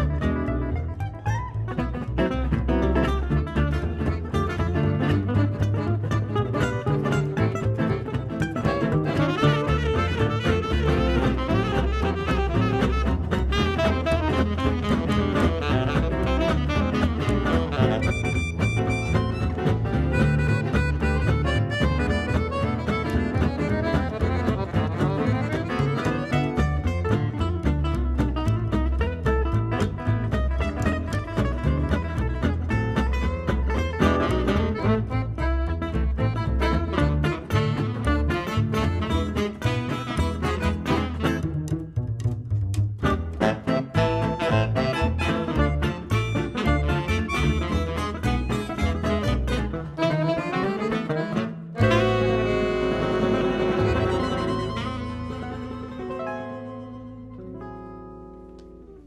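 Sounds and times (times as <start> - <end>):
accordion: 0.0 - 41.9, 43.0 - 59.0
acoustic guitars: 0.0 - 42.2, 42.8 - 59.0.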